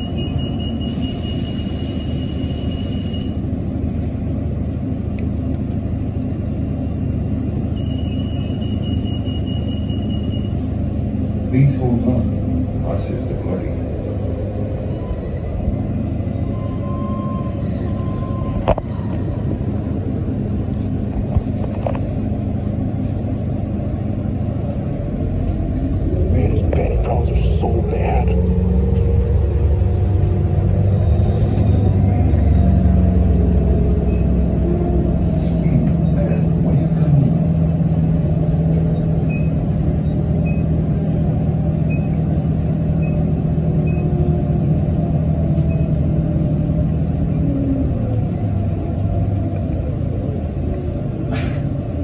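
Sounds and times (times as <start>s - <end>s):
bus interior low rumble: 0.0s - 52.0s
steady bus drone: 0.0s - 52.0s
sharp hiss or clunk: 51.3s - 51.7s.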